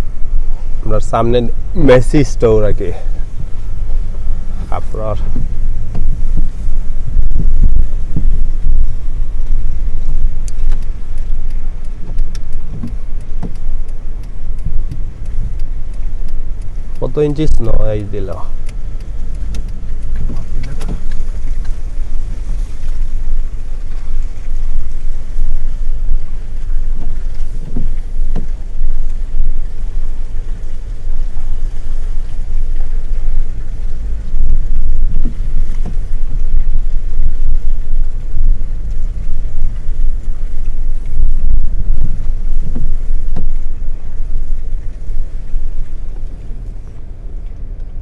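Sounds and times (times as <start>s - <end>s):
low rumble of engine and tyres: 0.0s - 48.0s.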